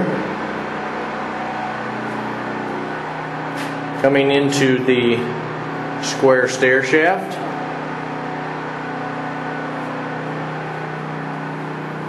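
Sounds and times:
low drone: 0:00.0 - 0:12.0
machine hum: 0:00.0 - 0:12.0.

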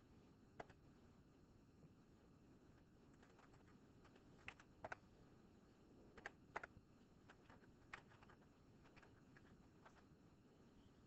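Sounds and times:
computer keyboard keystrokes: 0:00.6 - 0:00.8, 0:03.2 - 0:05.0, 0:06.2 - 0:06.7, 0:07.3 - 0:10.0.

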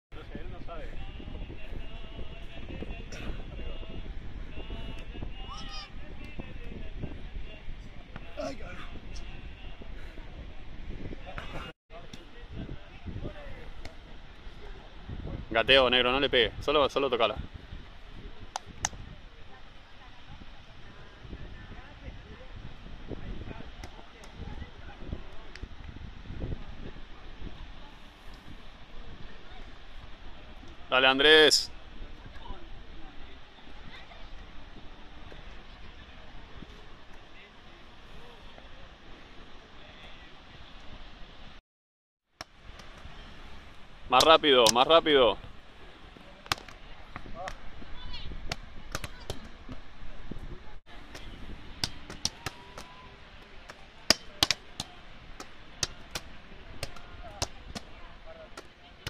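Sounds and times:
wind rumble on microphone: 0:00.1 - 0:30.9, 0:45.2 - 0:53.6.

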